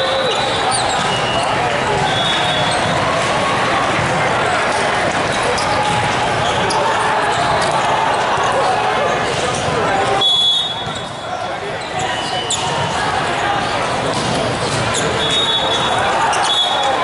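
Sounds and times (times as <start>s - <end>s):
many voices talking and calling: 0.0s - 17.0s
volleyballs hit and bouncing: 0.0s - 17.0s.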